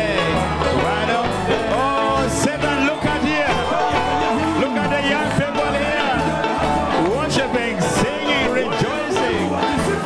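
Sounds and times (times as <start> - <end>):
congregation singing gospel song: 0.0 - 10.0
instrumental backing with bass: 0.0 - 10.0.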